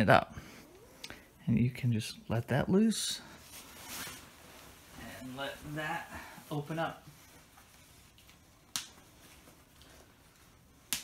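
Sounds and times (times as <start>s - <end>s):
nylon quilt rustling: 2.9s - 10.9s.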